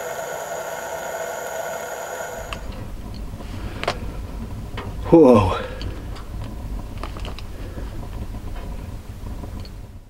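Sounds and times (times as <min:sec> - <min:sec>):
low steady rumble: 0:00.0 - 0:10.0
wood fire crackling: 0:00.0 - 0:10.0.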